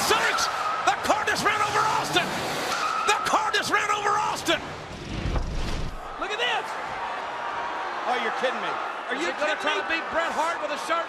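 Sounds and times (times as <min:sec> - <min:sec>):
car tyres squealing on concrete: 0:00.0 - 0:03.6
voices shouting: 0:00.0 - 0:04.5.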